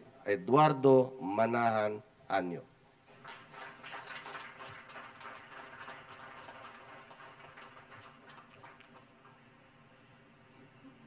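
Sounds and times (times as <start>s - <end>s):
audience applause: 3.1s - 9.5s.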